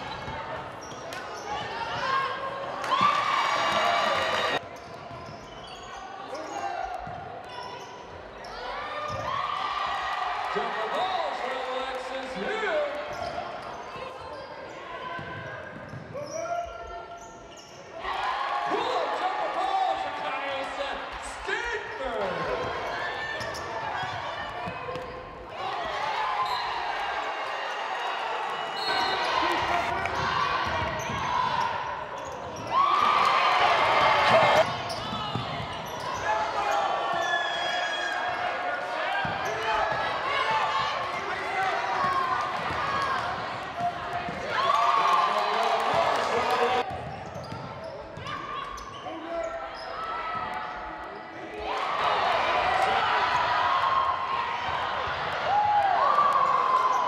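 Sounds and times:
voices of players and spectators: 0.0 - 57.0.

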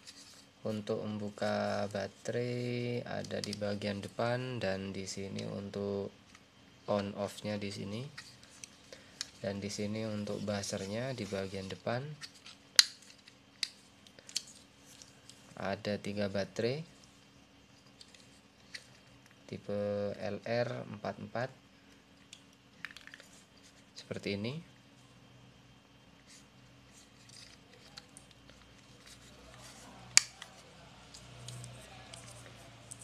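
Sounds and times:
small plastic clicks and handling: 11.6 - 15.4, 22.2 - 23.7.

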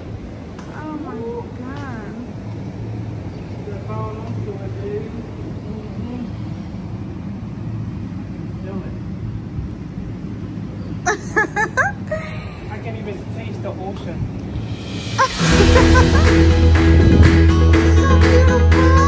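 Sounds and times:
low rumble and hiss: 0.0 - 19.0.

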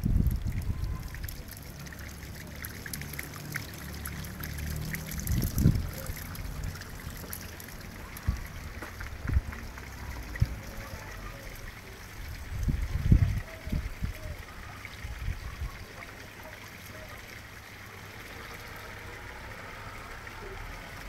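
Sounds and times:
water trickling into pond: 0.0 - 21.0.

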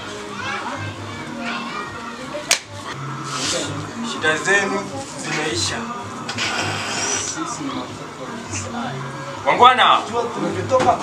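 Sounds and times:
background music: 0.0 - 11.0
voices talking: 0.0 - 11.0.

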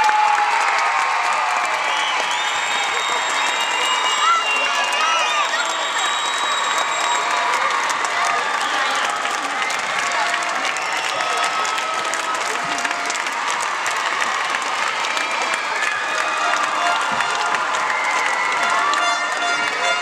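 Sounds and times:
crowd applauding: 0.0 - 20.0
crowd voices and cheers: 0.0 - 20.0.

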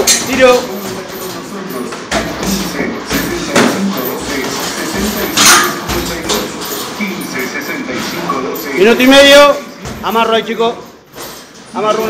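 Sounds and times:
footwork on foam mats: 0.0 - 6.9.

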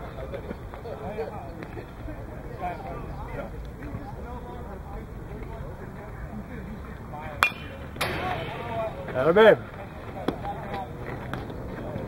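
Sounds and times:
faint voices: 0.0 - 12.0
baseball bat cracking ball: 7.4 - 11.4.

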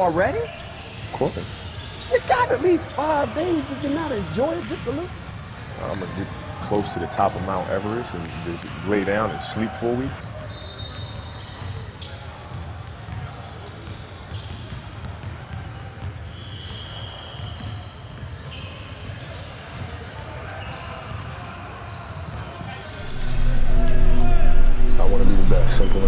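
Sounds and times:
distant voices echoing: 23.0 - 26.0.

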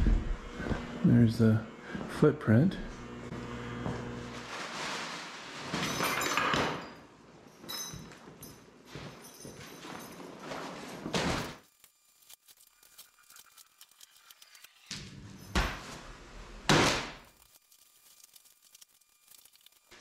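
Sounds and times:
plastic sheet crinkling: 4.3 - 5.7, 17.3 - 20.0.

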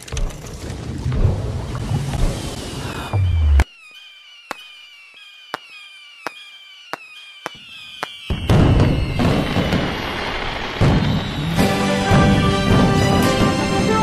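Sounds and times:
fireworks bangs and crackle: 0.8 - 14.0
fireworks pops with falling whistles: 1.8 - 14.0.

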